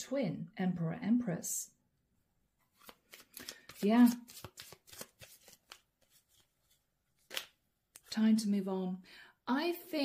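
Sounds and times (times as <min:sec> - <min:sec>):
cards being shuffled: 0:02.7 - 0:08.1.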